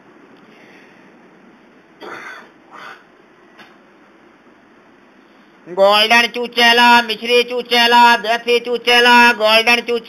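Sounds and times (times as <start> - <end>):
bird rough calls: 2.0 - 3.2.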